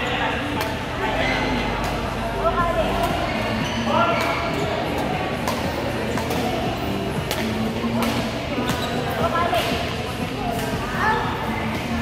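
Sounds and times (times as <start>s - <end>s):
shoe squeaks on court: 3.0s - 7.6s, 8.6s - 9.8s
racket hitting shuttlecock: 5.0s - 8.8s.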